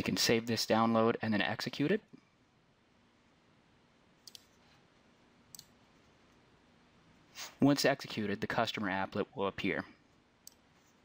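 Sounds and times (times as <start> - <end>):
computer mouse clicks: 4.2 - 4.6, 5.5 - 5.8, 10.4 - 10.6.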